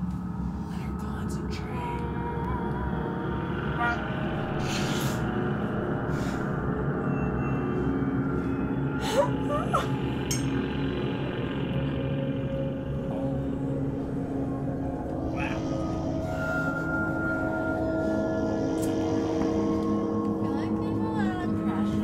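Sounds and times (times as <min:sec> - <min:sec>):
ambient drone music: 0:00.0 - 0:22.0.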